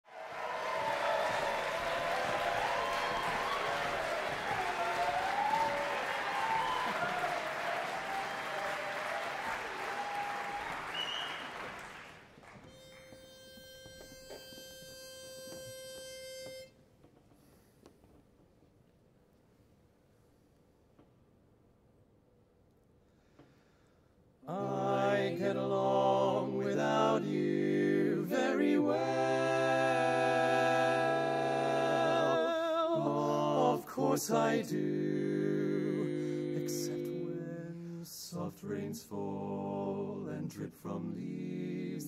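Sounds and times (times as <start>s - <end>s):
audience applause with cheering: 0.0s - 12.6s
pitch pipe steady note: 12.6s - 16.8s.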